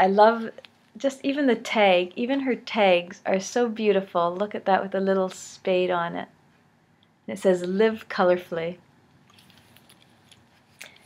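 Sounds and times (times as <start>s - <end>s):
fabric rustling: 9.3s - 11.0s.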